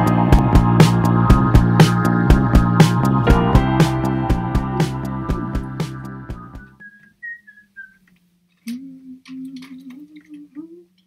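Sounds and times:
high whistled notes: 6.4s - 8.0s
woman humming: 8.6s - 11.0s.

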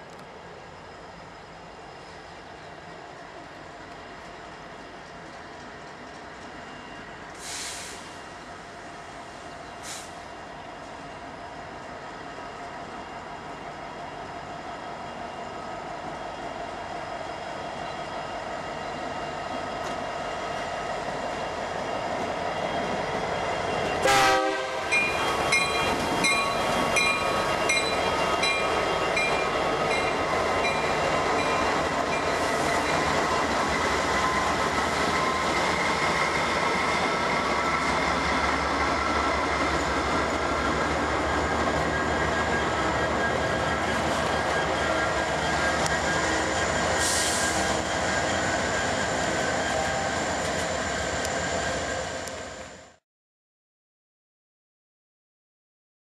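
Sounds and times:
freight cars rolling on rails: 0.0s - 52.6s
diesel locomotives running: 0.0s - 53.0s
crossing bell dinging: 24.9s - 33.2s.

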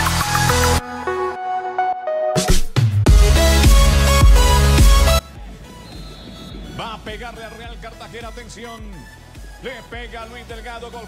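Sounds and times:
background music: 0.0s - 11.0s
male commentator speaking: 6.6s - 11.0s.

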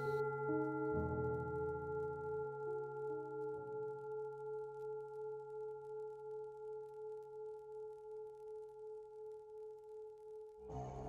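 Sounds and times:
singing bowl ringing: 0.0s - 11.0s.

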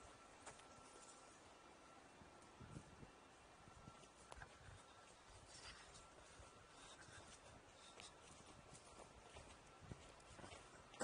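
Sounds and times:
faint steady tone: 0.0s - 11.0s.

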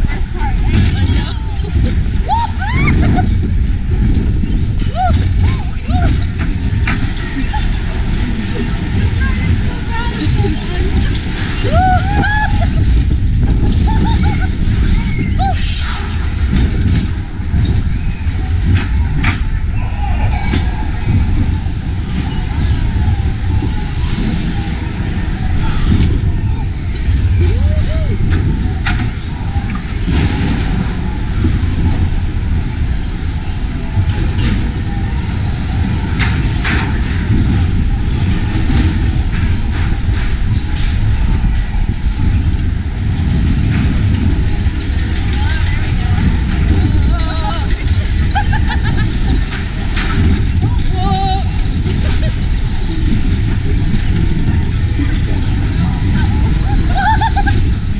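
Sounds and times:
roller coaster wheels rumbling: 0.0s - 57.9s
track clacks: 0.0s - 57.9s
wind on microphone: 0.0s - 57.9s.

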